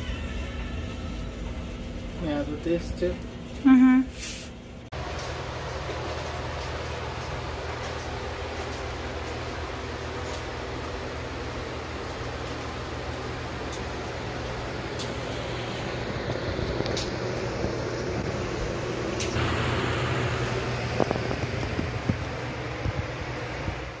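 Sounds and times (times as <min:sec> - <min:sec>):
room hum and hiss: 0:00.0 - 0:24.0.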